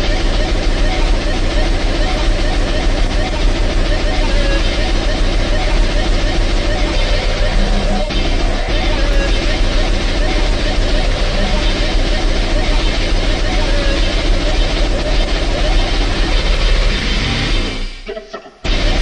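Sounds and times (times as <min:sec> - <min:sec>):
distorted electronic music: 0:00.0 - 0:19.0.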